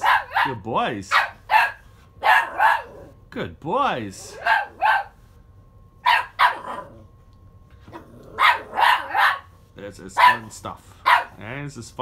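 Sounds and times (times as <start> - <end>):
dog barking: 0.0 - 3.1, 4.4 - 5.2, 6.0 - 7.0, 8.4 - 9.5, 10.2 - 11.4.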